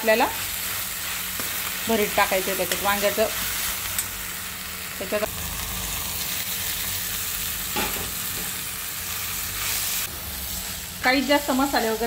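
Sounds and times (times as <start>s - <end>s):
greens frying in a pan: 0.0s - 12.0s.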